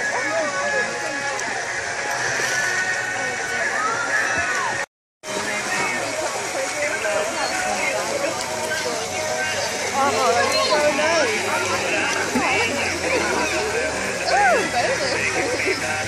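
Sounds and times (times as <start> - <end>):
children chattering and shouting: 0.0 - 4.8, 5.4 - 16.0
water splashing: 0.0 - 16.0.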